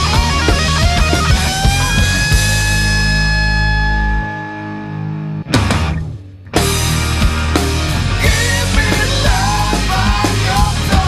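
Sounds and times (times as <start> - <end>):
rock music: 0.0 - 11.0
long ringing guitar chord: 2.6 - 5.5.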